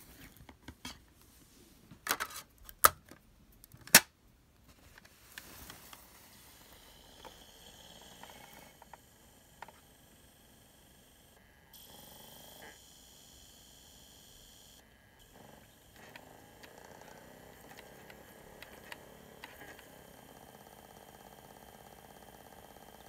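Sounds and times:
dvd player whirring: 0:05.3 - 0:23.0
soft disc reading clicks: 0:15.8 - 0:21.5.

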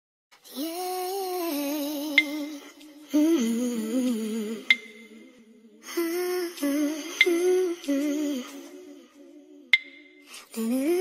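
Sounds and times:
person humming a melody: 0:00.5 - 0:11.0.

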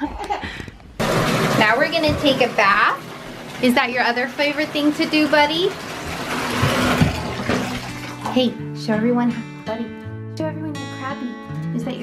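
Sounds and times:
water pouring into bathtub: 0:01.0 - 0:08.6.

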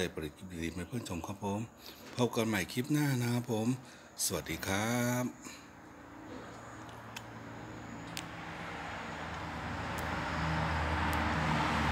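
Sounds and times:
vehicle approaching: 0:05.5 - 0:11.9.

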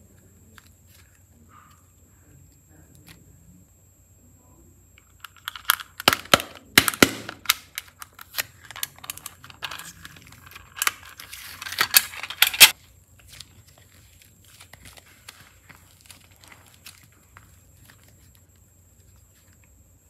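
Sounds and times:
plastic toy case clicks and crackles: 0:05.0 - 0:12.8.

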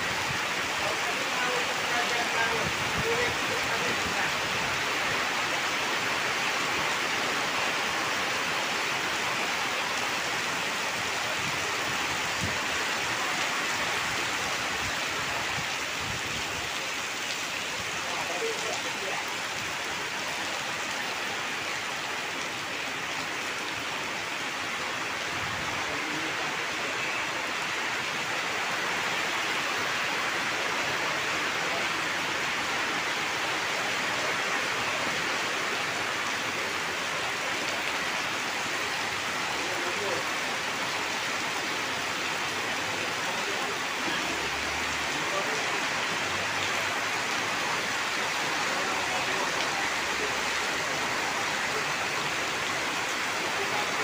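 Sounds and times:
heavy rain pouring: 0:00.0 - 0:54.0
rain running off canopies: 0:00.0 - 0:54.0
water splashing on flooded ground: 0:00.0 - 0:54.0.

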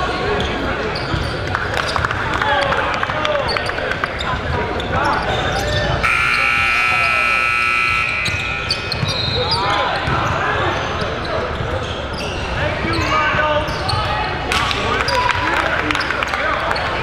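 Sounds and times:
crowd chatter: 0:00.0 - 0:17.0
sneakers squeaking on hardwood: 0:00.4 - 0:02.1, 0:03.5 - 0:06.4, 0:08.2 - 0:14.2
arena buzzer: 0:06.0 - 0:08.9.

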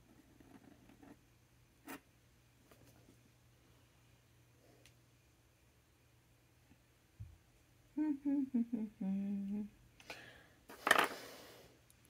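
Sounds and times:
woman humming: 0:07.9 - 0:09.9.

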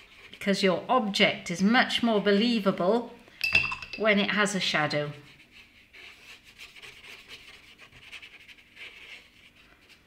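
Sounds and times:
paintbrush bristles scratching paper: 0:05.0 - 0:10.0.

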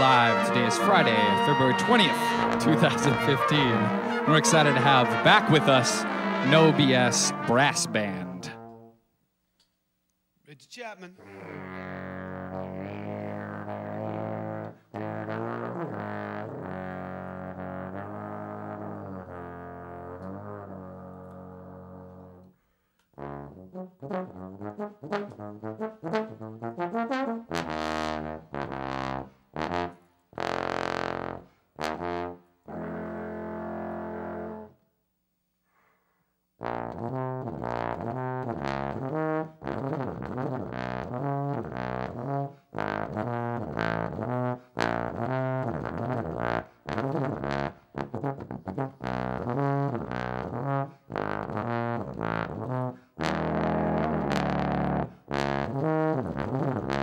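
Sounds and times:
trombone playing: 0:00.0 - 0:09.0, 0:11.2 - 0:22.5, 0:23.2 - 0:34.8, 0:36.6 - 0:57.0.

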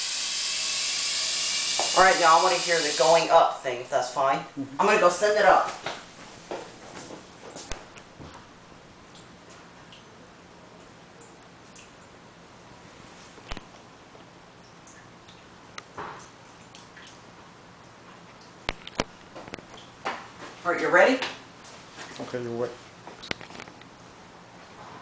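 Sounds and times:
faint low machinery hum: 0:00.0 - 0:25.0.

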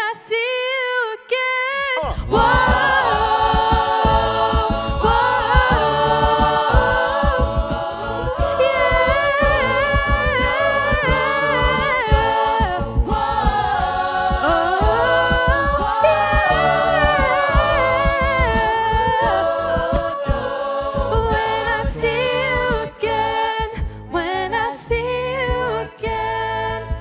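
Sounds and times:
backing vocal harmonies: 0:00.0 - 0:27.0
vocal percussion beat: 0:01.8 - 0:27.0.

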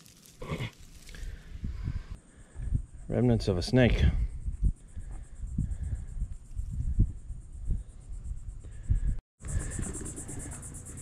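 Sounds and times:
insects trilling: 0:02.2 - 0:11.0.

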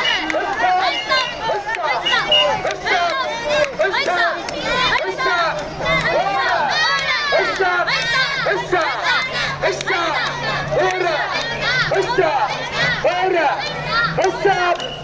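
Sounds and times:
crowd chanting in rhythm: 0:00.0 - 0:15.0.

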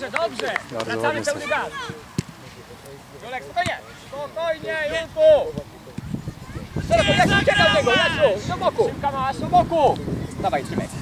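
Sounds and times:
distant shouts: 0:06.4 - 0:09.9.

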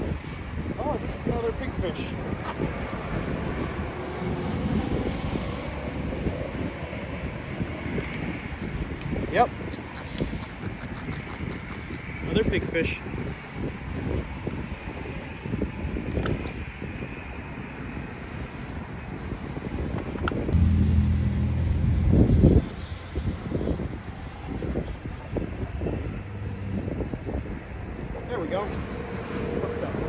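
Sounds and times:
road traffic passing: 0:00.0 - 0:14.4, 0:16.7 - 0:30.0
wind buffeting microphone: 0:00.0 - 0:30.0
low engine drone: 0:20.4 - 0:28.2.

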